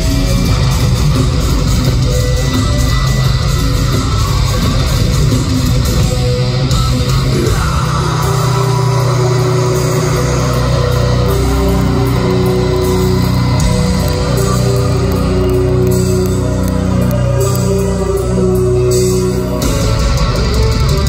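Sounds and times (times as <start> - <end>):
heavy metal band playing live: 0.0 - 21.0.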